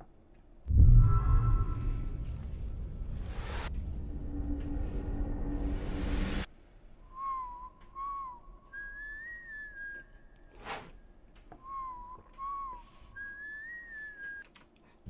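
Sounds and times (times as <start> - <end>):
whoosh: 0.7 - 6.5
whistled tune: 7.0 - 10.3, 11.6 - 14.5.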